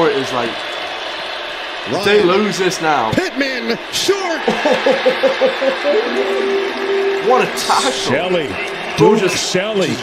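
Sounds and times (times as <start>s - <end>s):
stadium crowd noise: 0.0s - 10.0s
man laughing: 4.4s - 6.0s.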